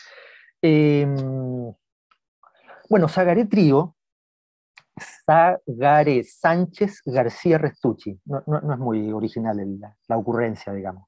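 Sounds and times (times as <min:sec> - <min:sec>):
man speaking: 0:00.6 - 0:01.8, 0:02.8 - 0:03.9, 0:04.8 - 0:11.0.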